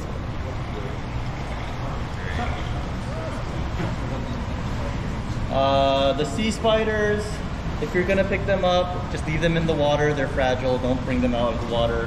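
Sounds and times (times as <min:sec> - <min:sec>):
faint voices: 0:00.0 - 0:06.5
low machine hum: 0:00.0 - 0:12.0.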